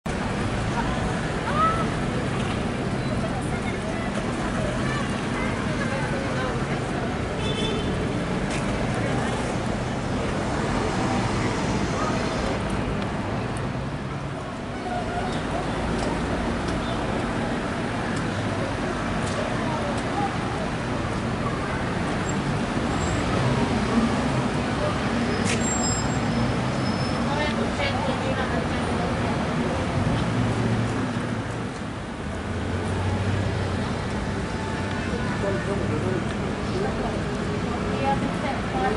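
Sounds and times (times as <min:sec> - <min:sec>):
traffic rumble: 0:00.0 - 0:38.9
faint indistinct voices: 0:00.1 - 0:38.9.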